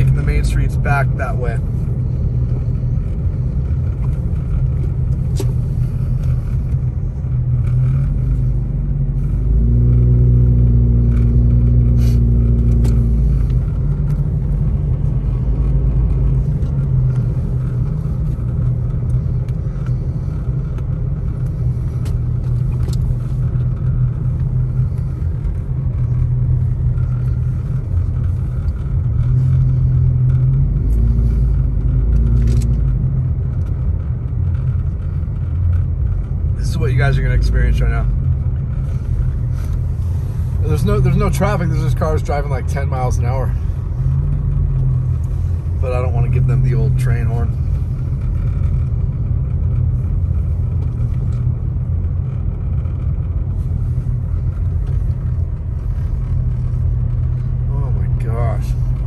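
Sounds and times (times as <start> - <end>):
engine drone: 0.0 - 59.0
vehicle engine and tyres rumbling: 0.0 - 59.0.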